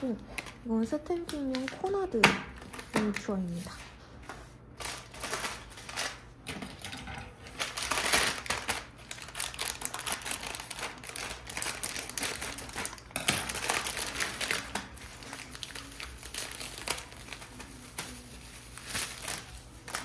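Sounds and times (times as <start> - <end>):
plastic packaging crinkling: 0.0 - 3.9, 4.6 - 20.0.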